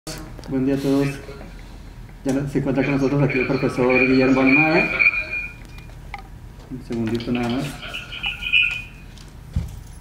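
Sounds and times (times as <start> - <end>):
high electronic tone: 2.6 - 5.9, 7.4 - 9.1.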